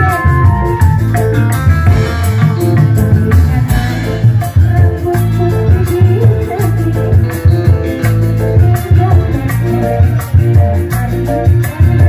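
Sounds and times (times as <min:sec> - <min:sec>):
live band music through speakers: 0:00.0 - 0:12.0.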